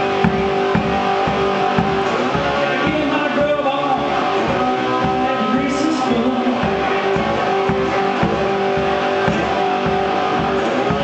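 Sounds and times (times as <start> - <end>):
blues guitar playing: 0.0 - 11.0
steady low beat: 0.0 - 11.0.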